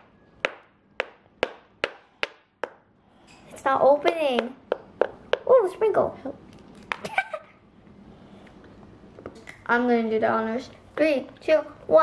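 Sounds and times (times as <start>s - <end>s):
mallet tapping hollow chocolate shell: 0.0s - 2.9s, 4.0s - 5.5s.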